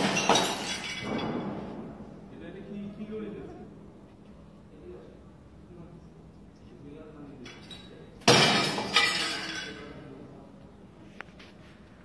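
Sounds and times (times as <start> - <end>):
glass shards clinking: 0.0 - 1.5, 7.4 - 10.0
glass shattering: 0.0 - 1.7, 7.5 - 10.0.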